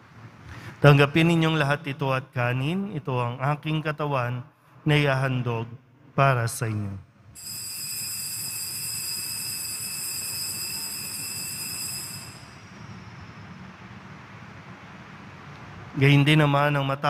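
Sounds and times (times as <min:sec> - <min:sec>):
altar bells jingling: 0:07.4 - 0:13.2.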